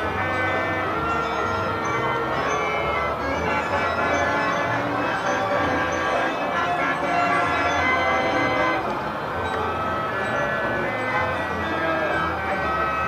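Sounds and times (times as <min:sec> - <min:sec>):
bell-like chiming music: 0:00.0 - 0:13.0.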